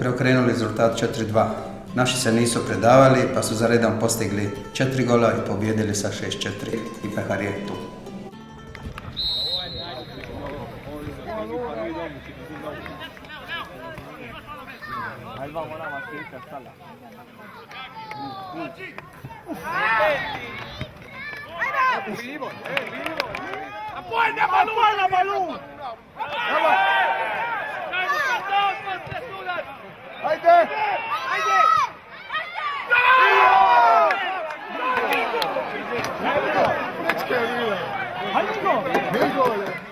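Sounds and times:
high whistle: 9.1s - 10.4s
people shouting and calling: 9.6s - 39.9s.

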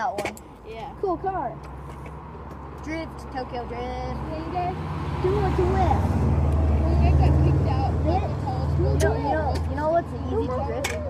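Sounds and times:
vehicle engine low rumble: 0.0s - 11.0s.

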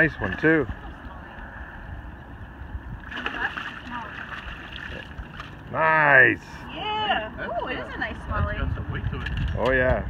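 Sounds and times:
wind: 0.0s - 10.0s
fish splashing in water: 3.0s - 5.7s
lapping water: 3.0s - 5.7s.

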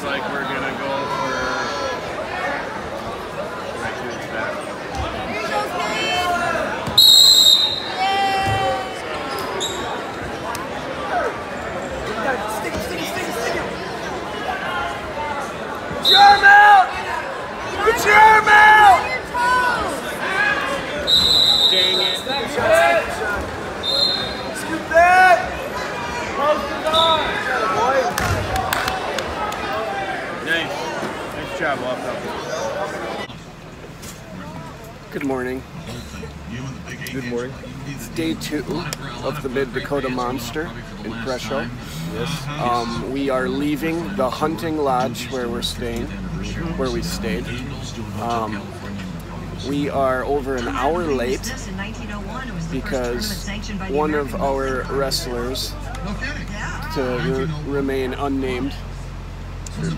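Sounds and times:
gym crowd noise: 0.0s - 59.9s
crowd shouting: 5.0s - 33.3s
referee's whistle blasts: 6.8s - 8.2s, 16.0s - 16.7s, 21.0s - 22.5s, 23.8s - 24.6s
faint voices: 7.6s - 59.9s.

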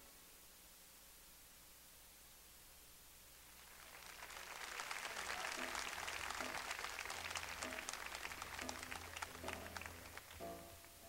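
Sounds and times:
faint music: 0.0s - 11.0s
audience applauding: 3.5s - 10.6s.

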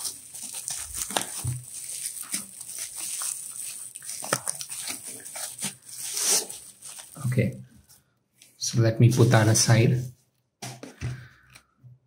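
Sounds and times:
bubble wrap crinkling: 0.0s - 8.6s.

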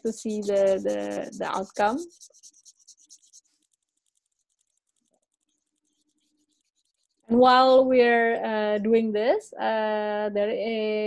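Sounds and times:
marker pen scratching on paper: 0.0s - 7.3s.

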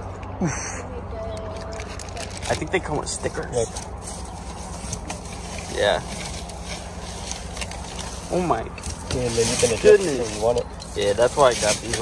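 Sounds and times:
steady low hum: 0.0s - 12.0s
foam and cardboard rustling: 1.6s - 12.0s.

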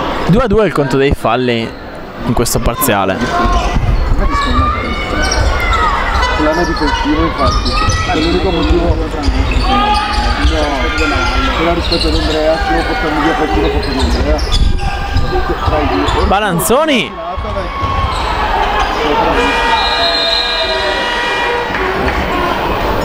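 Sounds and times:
many voices shouting: 2.8s - 23.0s.

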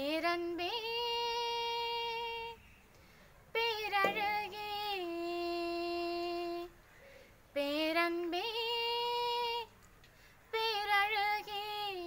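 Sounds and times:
woman singing unaccompanied: 0.0s - 2.8s, 3.5s - 9.8s, 10.4s - 12.0s.

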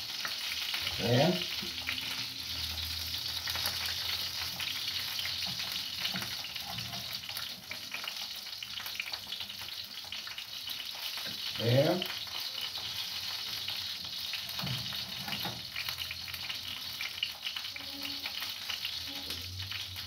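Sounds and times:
meat sizzling in a pan: 0.0s - 20.0s.

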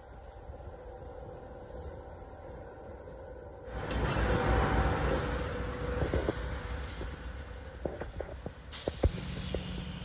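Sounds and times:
freight train rumble: 0.0s - 10.0s
wheels clicking on rails: 0.0s - 10.0s.

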